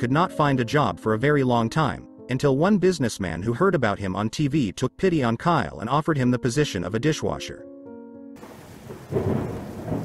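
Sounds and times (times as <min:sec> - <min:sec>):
background music chord: 0:00.0 - 0:08.4
rain falling: 0:08.4 - 0:10.0
thunder rolling: 0:08.4 - 0:10.0.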